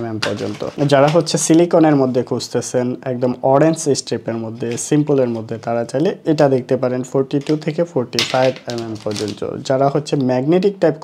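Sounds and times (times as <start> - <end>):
man talking: 0.0 - 11.0
plastic packaging crinkling: 8.3 - 9.6.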